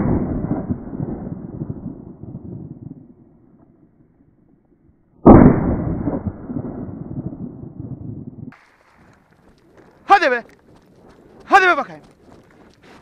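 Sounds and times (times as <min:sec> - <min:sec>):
shotgun shot echoing: 0:05.2 - 0:06.4.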